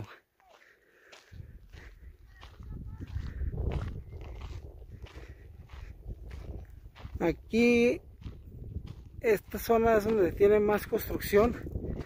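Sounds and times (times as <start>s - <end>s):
footsteps crunching on gravel: 0.0s - 12.0s
wind rumbling on microphone: 1.3s - 12.0s.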